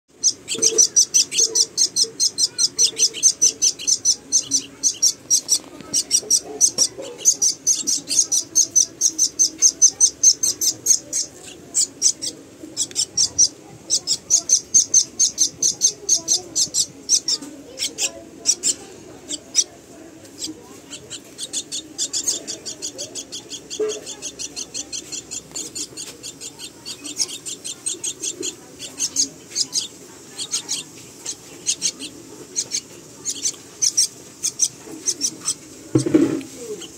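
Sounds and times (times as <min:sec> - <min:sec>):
nestlings begging calls: 0:00.1 - 0:36.9.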